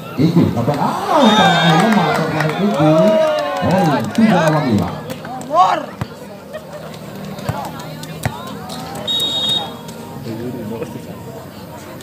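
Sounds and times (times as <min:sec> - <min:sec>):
spectators chattering: 0:00.0 - 0:12.0
referee's whistle blast: 0:09.0 - 0:09.8.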